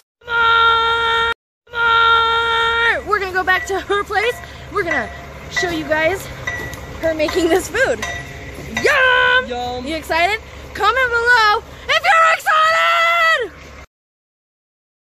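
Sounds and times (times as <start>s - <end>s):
low background rumble: 1.7s - 13.9s.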